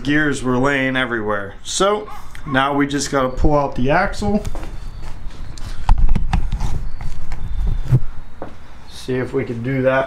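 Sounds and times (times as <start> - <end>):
footsteps: 4.2 - 8.8.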